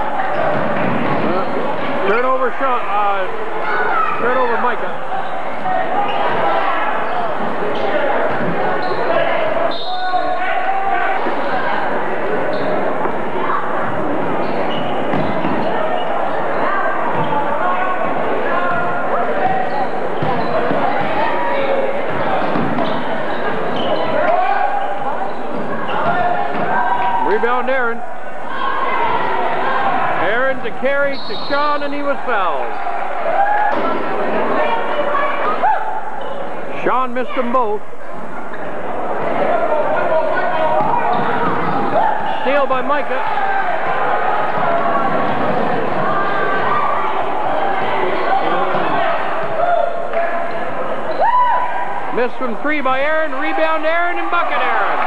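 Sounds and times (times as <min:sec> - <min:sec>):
crowd chatter: 0:00.0 - 0:55.0
people shouting: 0:39.4 - 0:42.5, 0:51.1 - 0:52.0.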